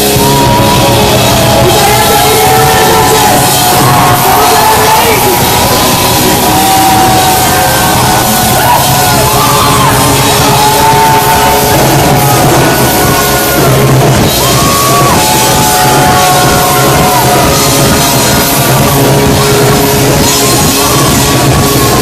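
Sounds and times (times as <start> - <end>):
electric guitar sliding lead line: 0.0 - 22.0
live rock band playing: 0.0 - 22.0.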